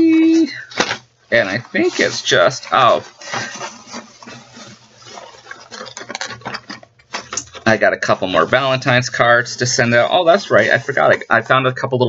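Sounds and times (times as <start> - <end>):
rustling of items handled: 0.0 - 11.5.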